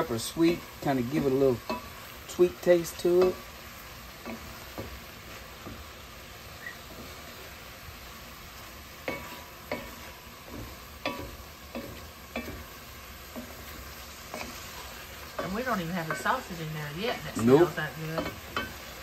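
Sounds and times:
food sizzling in a metal pot: 0.0 - 19.0.

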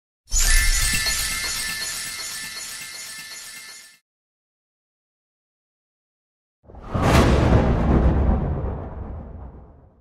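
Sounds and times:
glittering shimmer: 0.3 - 4.0.

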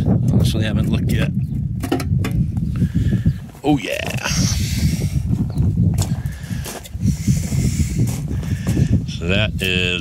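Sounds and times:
microphone handling: 0.0 - 10.0
wind rumble on microphone: 0.0 - 10.0.

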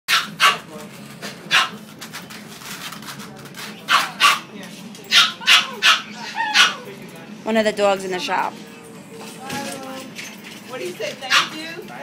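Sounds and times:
dog barking: 0.1 - 0.7, 1.5 - 1.8, 3.9 - 4.5, 5.1 - 6.9, 11.3 - 11.6.

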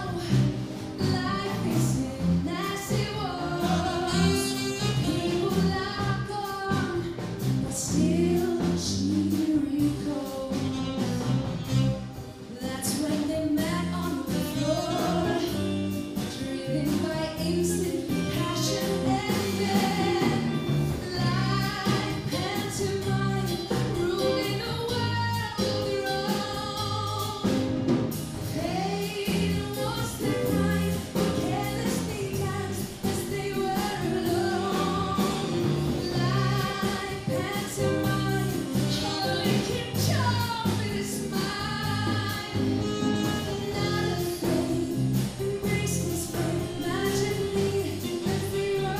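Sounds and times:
saxophone: 0.0 - 7.0, 10.0 - 12.8, 13.6 - 27.7, 28.6 - 48.9
bass guitar: 0.0 - 48.9
drums with cymbals: 0.0 - 48.9
live band playing: 0.0 - 48.9
woman singing lead: 0.0 - 48.9.

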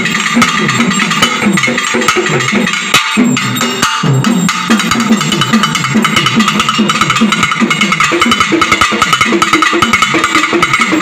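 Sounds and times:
double drums fast rhythm: 0.0 - 11.0.

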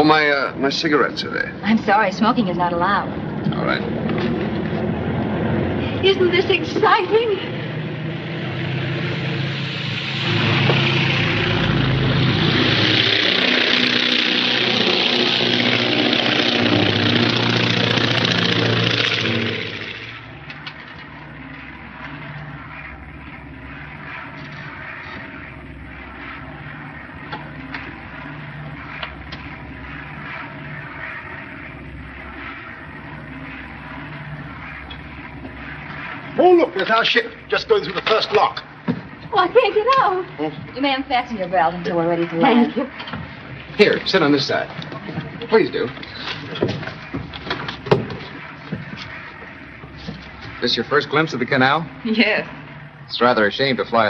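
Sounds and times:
propeller airliner engines droning: 1.5 - 54.0.

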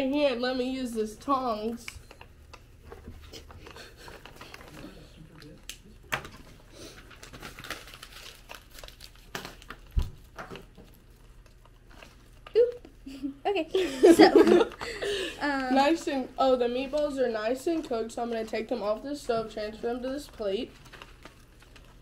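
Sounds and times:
tissue paper crinkling: 2.1 - 5.7, 6.3 - 12.8, 15.8 - 22.0.

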